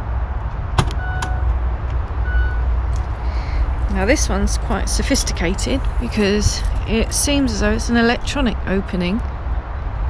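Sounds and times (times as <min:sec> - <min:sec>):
low rumble: 0:00.0 - 0:10.0
short electronic beeps: 0:02.2 - 0:02.7.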